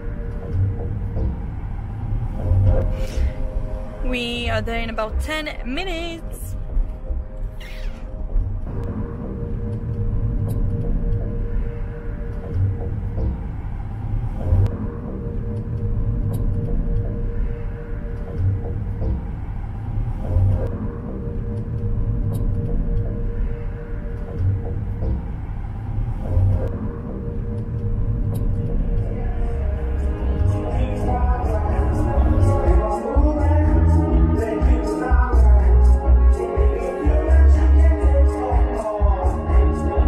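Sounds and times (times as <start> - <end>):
music with repeating beat: 0.0 - 2.9, 8.2 - 40.0
wind and road noise: 0.0 - 4.6, 8.2 - 30.9.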